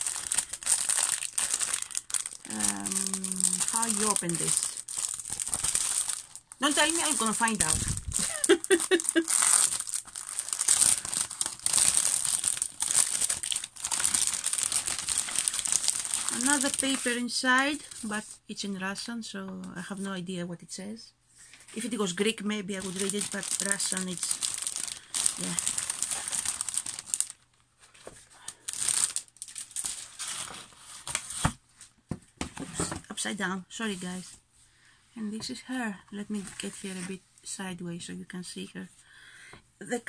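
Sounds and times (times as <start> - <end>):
plastic packaging crinkling: 0.0 - 18.2, 22.7 - 31.5.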